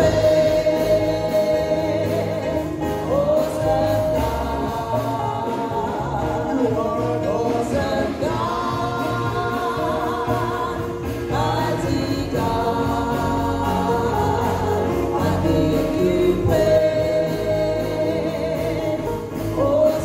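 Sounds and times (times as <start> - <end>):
instrumental accompaniment with bass: 0.0 - 20.0
man singing gospel song: 0.0 - 20.0.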